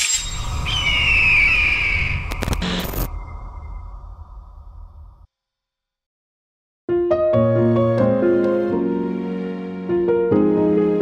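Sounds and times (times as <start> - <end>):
bird of prey screech: 0.0 - 2.4.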